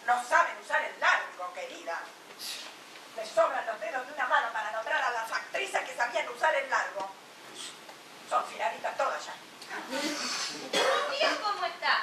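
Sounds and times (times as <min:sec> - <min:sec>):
brief hiss: 0:09.9 - 0:10.7.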